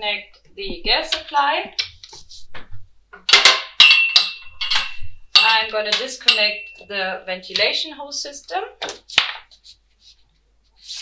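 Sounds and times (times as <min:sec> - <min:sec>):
metallic clink of coupling: 0:03.3 - 0:05.6.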